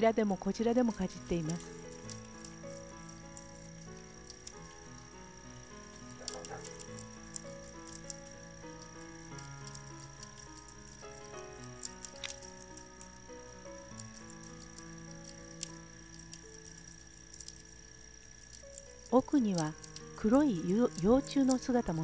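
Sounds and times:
caterpillars chewing leaf: 0.0 - 22.0
soft music of sustained notes: 0.0 - 22.0.

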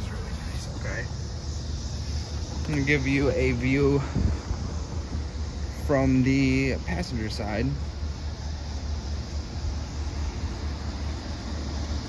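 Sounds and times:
even hiss: 0.0 - 12.0.

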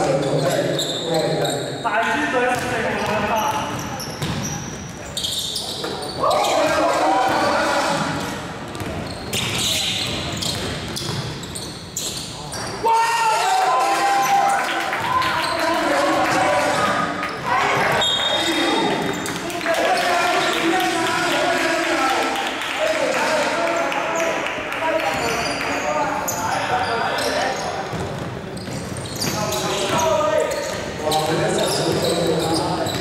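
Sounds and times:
basketball bouncing on court: 2.4 - 5.0, 7.2 - 11.8, 27.8 - 32.2
players calling out: 4.0 - 8.3.

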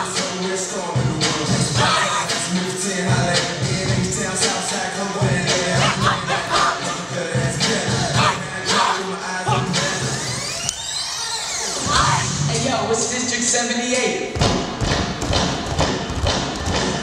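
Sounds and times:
music with beat and vocals: 0.0 - 10.6.

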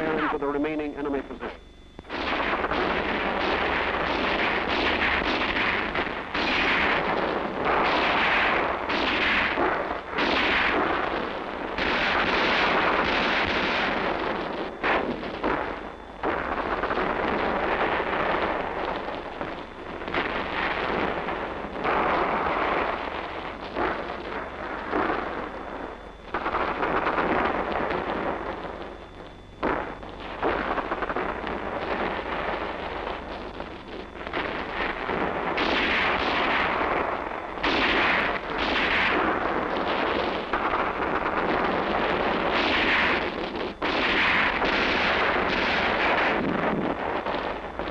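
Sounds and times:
rifle fire: 0.0 - 47.9.

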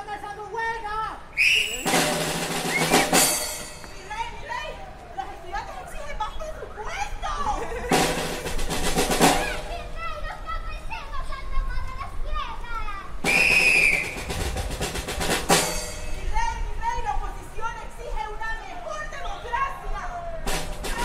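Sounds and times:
drum roll: 1.8 - 4.1, 7.8 - 9.9, 13.2 - 16.6, 20.4 - 21.0
excited voices calling out: 4.0 - 8.0, 9.2 - 14.4, 16.2 - 21.0.

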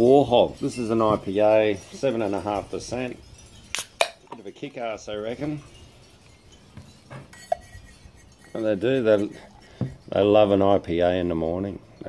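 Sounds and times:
glass clink: 0.2 - 10.2.

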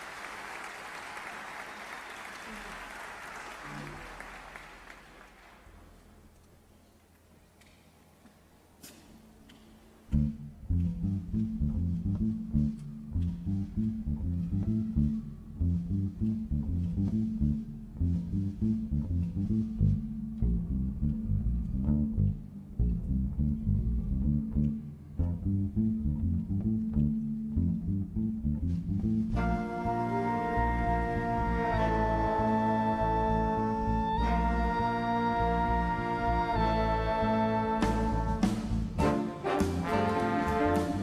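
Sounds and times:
electric bass line: 10.1 - 41.0.

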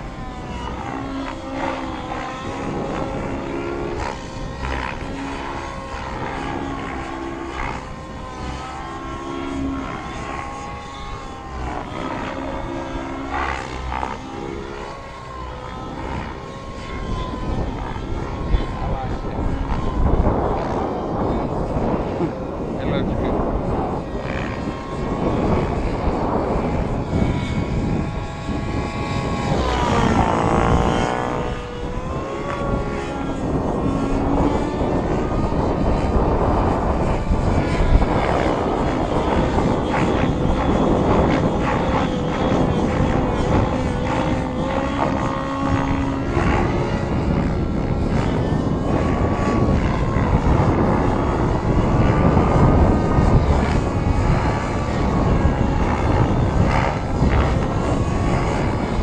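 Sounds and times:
model helicopter engine: 0.0 - 59.0.

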